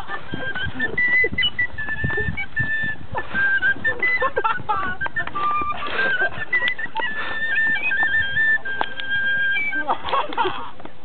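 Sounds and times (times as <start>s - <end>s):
small flute playing tune: 0.0s - 9.9s.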